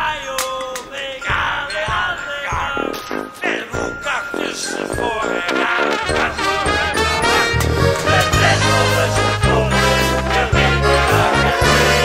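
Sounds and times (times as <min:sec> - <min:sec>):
brass band music: 0:02.8 - 0:12.0
bass drum strokes: 0:06.1 - 0:10.2.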